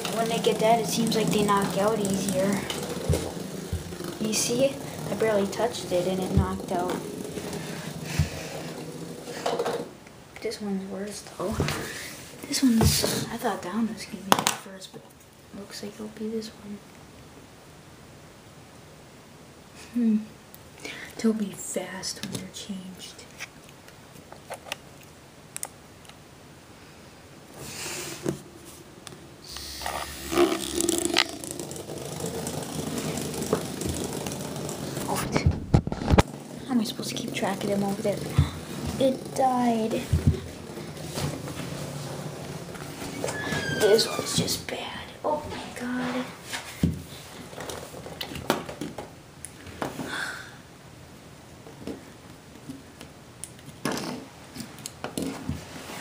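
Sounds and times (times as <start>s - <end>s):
toy motor buzzing and scraping: 29.6s - 35.2s.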